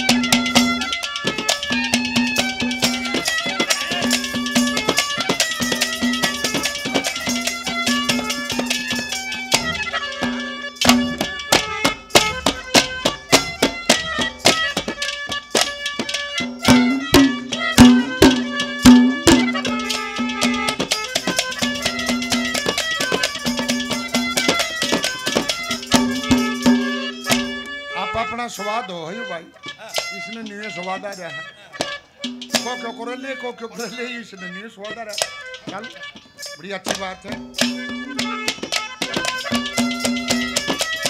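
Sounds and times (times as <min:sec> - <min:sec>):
accompanying instrument tones: 0:00.0 - 0:41.0
sharp percussive beats: 0:00.0 - 0:41.0
sustained folk melody: 0:00.0 - 0:41.0.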